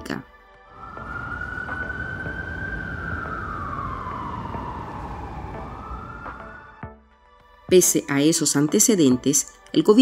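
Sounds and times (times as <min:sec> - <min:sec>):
emergency siren wailing: 0:00.7 - 0:07.0
low rumble: 0:00.8 - 0:06.8.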